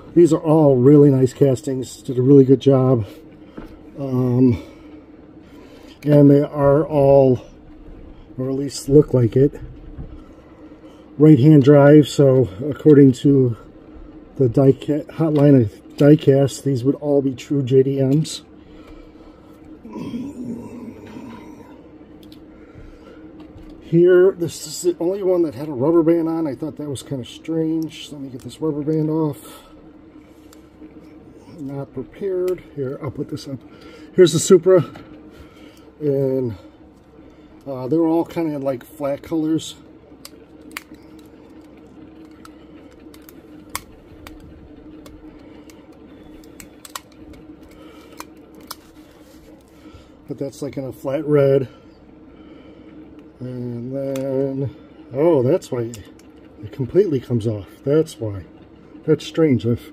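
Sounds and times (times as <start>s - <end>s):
faint steady hum: 0.0s - 59.9s
man clearing his throat: 19.9s - 21.7s.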